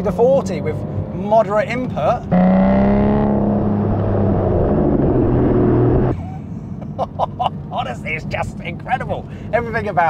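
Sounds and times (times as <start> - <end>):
car exhaust under throttle: 2.2 - 6.2.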